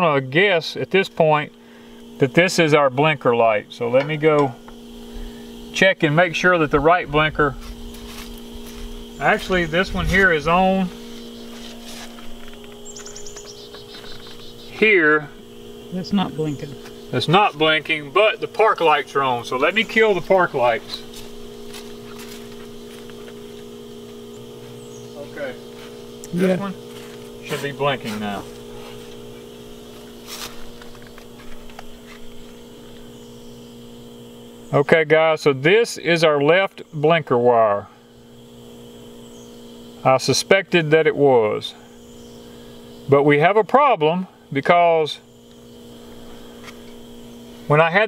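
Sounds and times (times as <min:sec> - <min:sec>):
steady low hum: 0:00.0 - 0:48.0
bird chirping: 0:09.1 - 0:11.6, 0:12.2 - 0:14.9, 0:15.6 - 0:21.2, 0:24.2 - 0:26.4, 0:39.1 - 0:40.0, 0:42.0 - 0:43.2.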